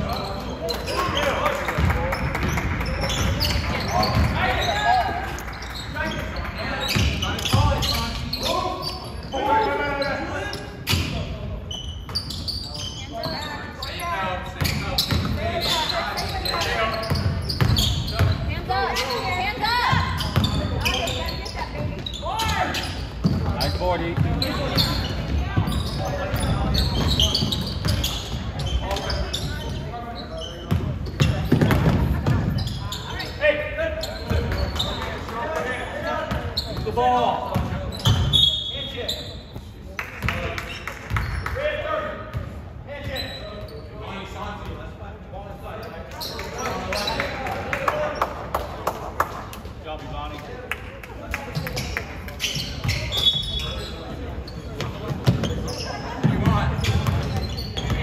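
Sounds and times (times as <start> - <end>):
voices calling and talking: 0.0 - 58.0
ball bouncing on hardwood court: 30.7 - 32.6, 54.8 - 58.0.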